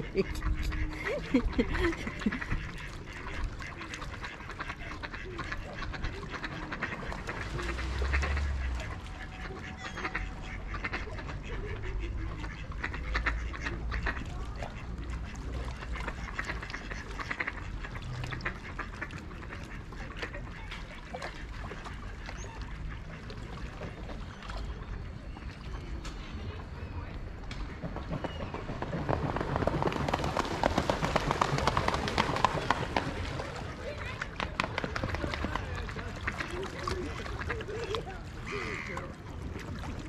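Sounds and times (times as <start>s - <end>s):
ducks quacking: 0.0s - 28.3s, 29.3s - 40.0s.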